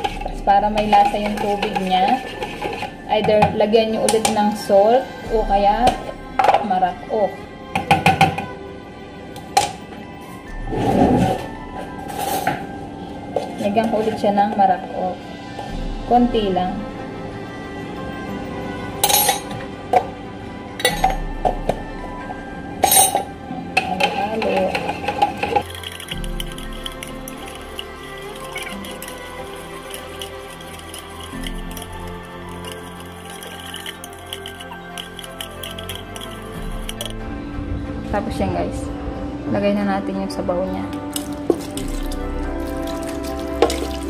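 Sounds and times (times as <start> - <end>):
background music: 0.0 - 44.0
metal spoon clinking against pot: 22.8 - 37.1.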